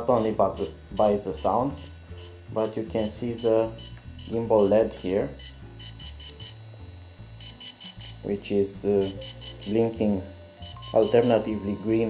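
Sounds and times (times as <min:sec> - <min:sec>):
low background music: 0:00.0 - 0:12.0
motors beeping: 0:00.0 - 0:12.0.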